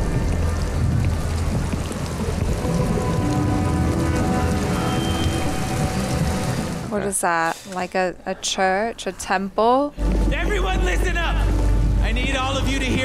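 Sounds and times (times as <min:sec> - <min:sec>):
noisy ambience with low rumble: 0:00.0 - 0:13.0.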